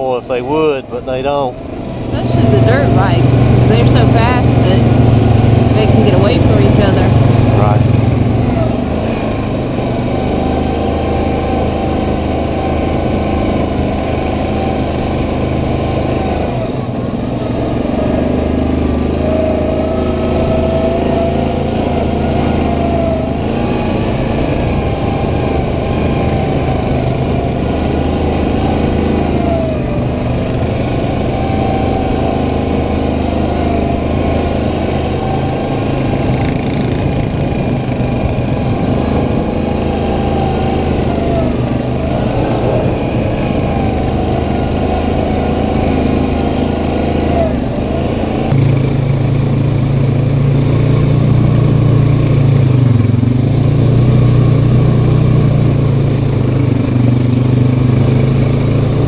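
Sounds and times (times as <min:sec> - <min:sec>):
atv engine droning: 0:00.0 - 0:59.0.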